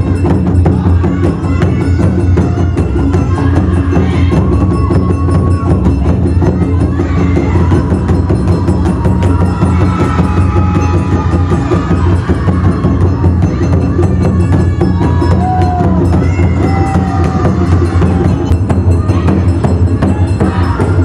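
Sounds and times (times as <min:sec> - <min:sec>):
low drum pulse: 0:00.0 - 0:21.0
rapid drum strikes: 0:00.0 - 0:21.0.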